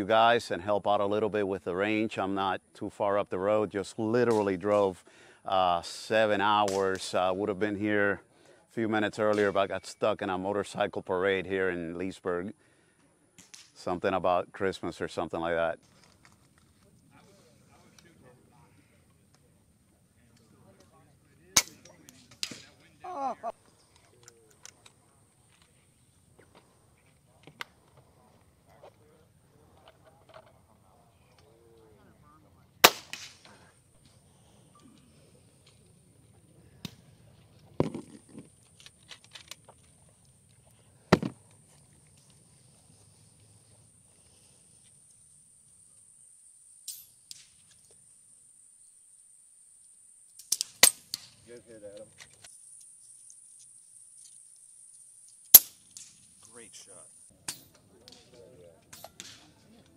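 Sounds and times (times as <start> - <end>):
air rifle shots: 32.8 - 33.5.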